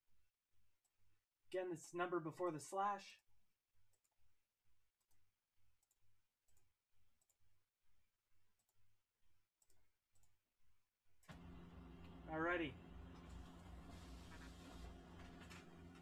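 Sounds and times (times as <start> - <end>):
low hum: 11.3 - 16.0.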